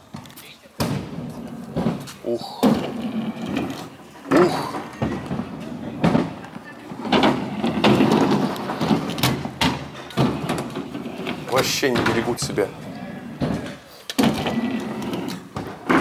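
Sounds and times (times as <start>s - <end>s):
kick scooters rolling on ramps: 0.0s - 16.0s
scooters clattering on ramps: 0.0s - 16.0s
background voices: 0.2s - 9.1s, 10.0s - 16.0s.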